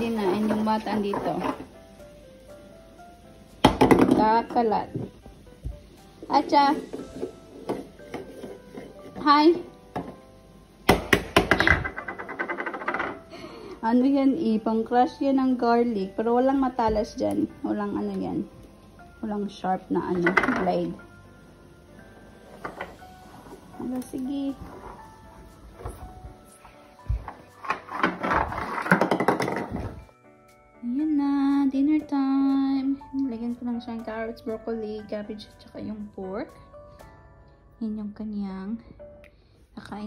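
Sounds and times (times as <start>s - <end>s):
faint background music: 0.0s - 40.0s
plastic toy knocking on wooden floor: 3.6s - 4.3s, 10.9s - 13.2s, 20.2s - 20.8s, 27.2s - 30.0s.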